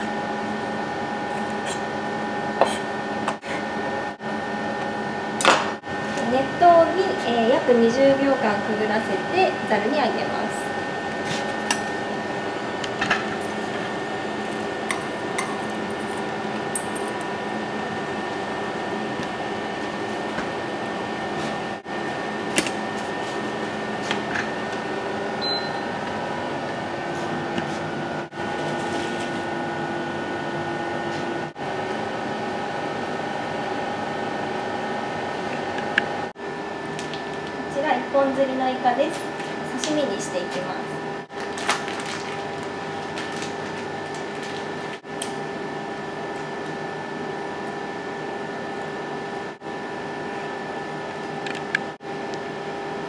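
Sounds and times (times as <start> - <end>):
kitchen appliances humming: 0.0 - 53.0.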